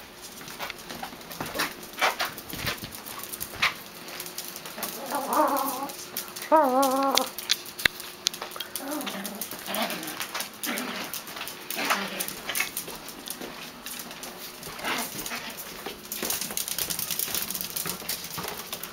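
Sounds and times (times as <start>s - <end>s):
claws clicking on tile floor: 0.2s - 18.9s
dogs whimpering: 4.8s - 7.4s.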